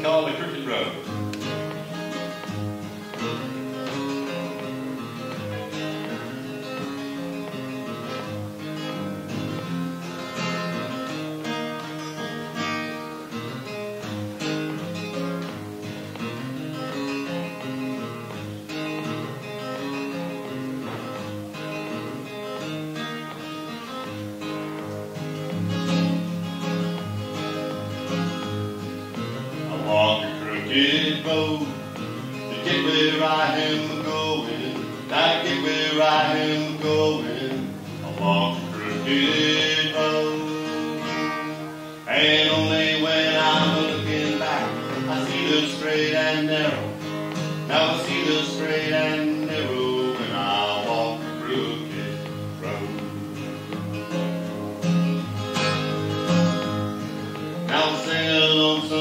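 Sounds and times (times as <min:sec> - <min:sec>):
acoustic guitar playing: 0:00.0 - 0:59.0.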